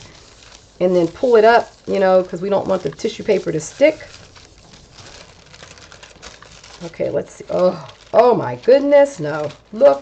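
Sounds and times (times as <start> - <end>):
tissue paper rustling: 0.0 - 10.0.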